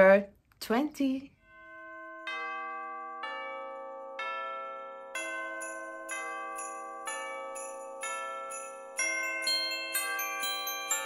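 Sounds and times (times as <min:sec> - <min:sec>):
bell-like chime notes: 0:01.4 - 0:11.0.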